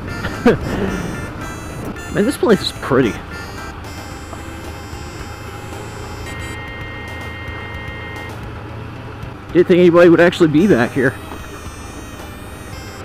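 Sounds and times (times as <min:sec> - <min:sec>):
faint high tone: 0:00.0 - 0:08.4, 0:10.6 - 0:13.0
motorcycle engine running: 0:00.0 - 0:13.0.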